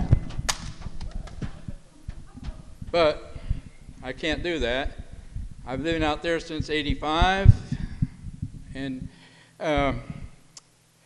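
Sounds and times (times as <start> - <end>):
microphone handling knocks: 0.0 - 9.2.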